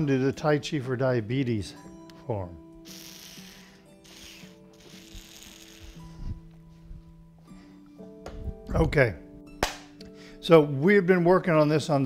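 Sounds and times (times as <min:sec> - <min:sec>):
quiet guitar music: 0:00.0 - 0:12.0.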